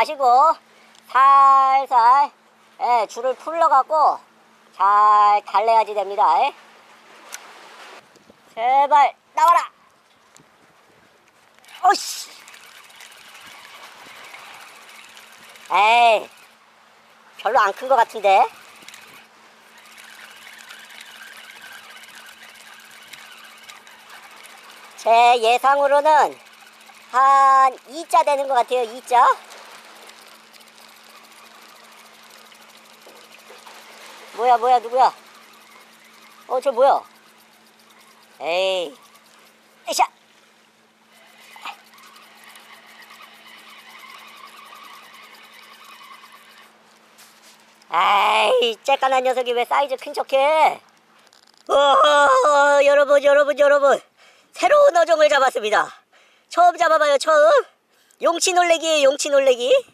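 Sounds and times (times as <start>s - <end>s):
fishing reel ticking whirr: 0.0s - 4.2s, 11.5s - 55.9s, 56.5s - 59.9s
faint steady hum: 0.0s - 54.7s.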